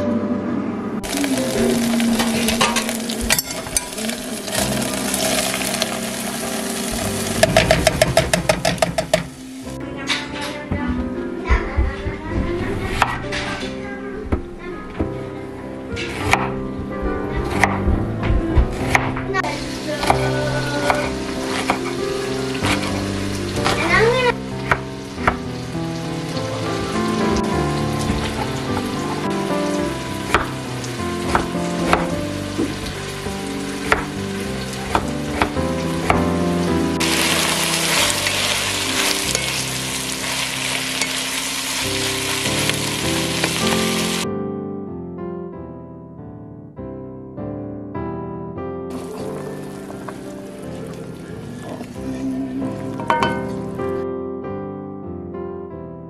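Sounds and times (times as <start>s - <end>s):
background music: 0.0s - 56.0s
vegetables sizzling in a pot: 1.0s - 10.2s, 19.3s - 44.2s, 48.9s - 53.8s.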